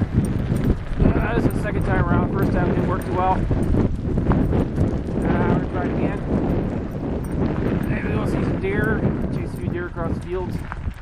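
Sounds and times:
bicycle rumbling over dirt track: 0:00.0 - 0:11.0
wind buffeting microphone: 0:00.0 - 0:11.0.

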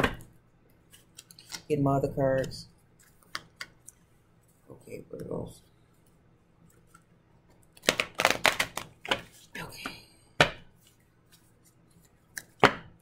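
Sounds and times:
cards shuffling and rustling: 0:00.7 - 0:05.4, 0:07.7 - 0:09.7, 0:10.7 - 0:12.7.

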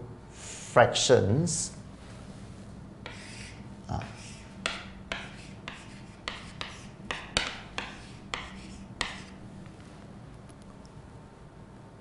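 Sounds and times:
chalk scratching on chalkboard: 0:03.0 - 0:09.4
chalk tapping on board: 0:03.0 - 0:09.4.

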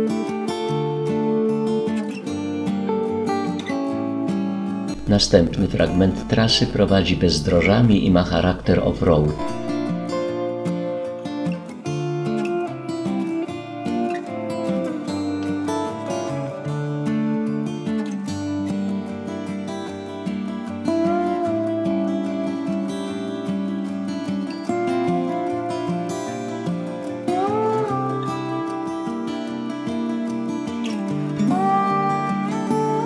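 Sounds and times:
strummed acoustic guitar music: 0:00.0 - 0:33.0.

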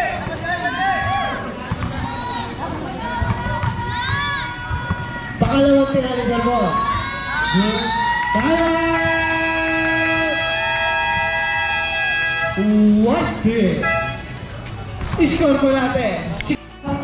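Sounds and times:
spectators shouting and cheering: 0:00.0 - 0:12.6
long drawn-out yells: 0:02.0 - 0:05.4, 0:06.3 - 0:12.6.

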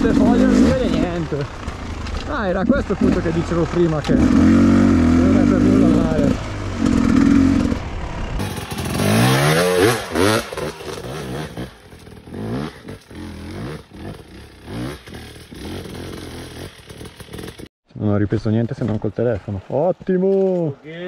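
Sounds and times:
dirt bike engine revving: 0:00.0 - 0:17.7.

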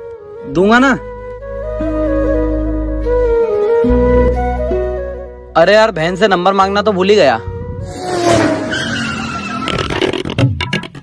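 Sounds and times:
tyre screeching: 0:08.2 - 0:10.4.

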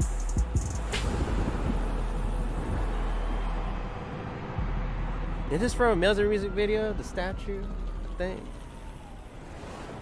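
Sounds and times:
hip-hop track: 0:00.0 - 0:08.7
deep bass hits: 0:04.6 - 0:05.4.

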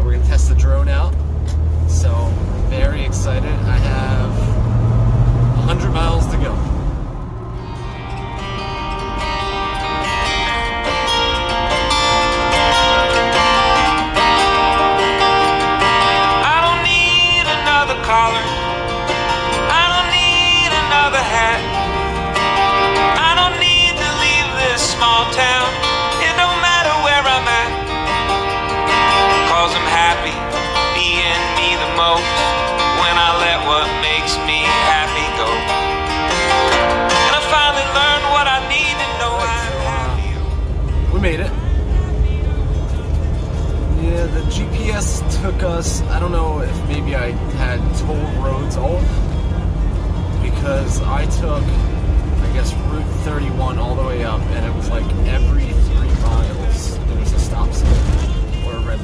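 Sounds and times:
country song with acoustic guitar: 0:07.6 - 0:59.0.

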